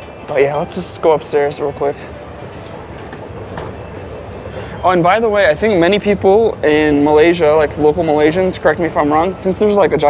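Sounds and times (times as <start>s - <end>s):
escalator rumbling: 0.0s - 10.0s.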